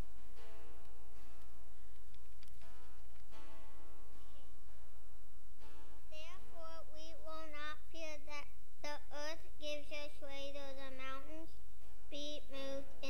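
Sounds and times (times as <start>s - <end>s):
steady low hum: 0.0s - 13.0s
girl reading aloud: 6.1s - 13.0s.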